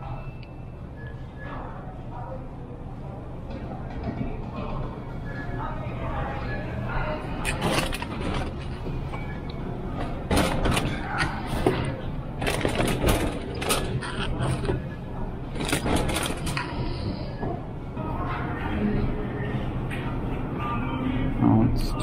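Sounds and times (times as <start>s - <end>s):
low hum of store ambience: 0.0s - 22.0s.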